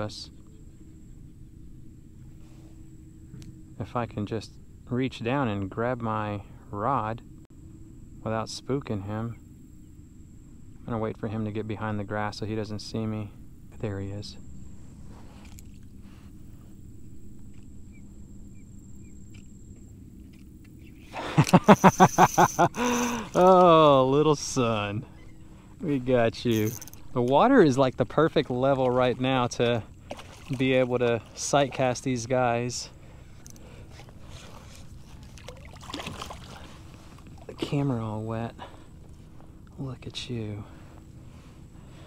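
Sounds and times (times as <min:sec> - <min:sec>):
man laughing: 0:21.1 - 0:23.9
water sloshing around kayak: 0:22.7 - 0:39.6
fish splashing in water: 0:30.0 - 0:31.4, 0:33.9 - 0:37.6.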